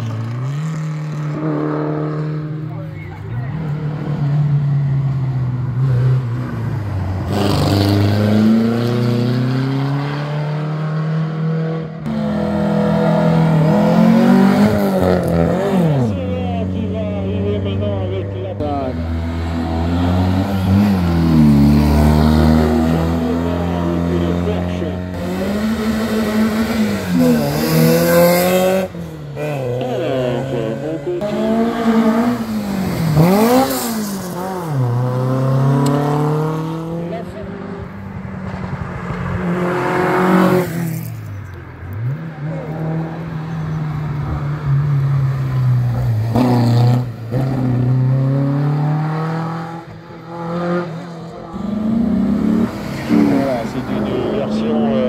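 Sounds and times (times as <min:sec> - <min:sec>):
racing cars accelerating: 0:00.0 - 0:55.0.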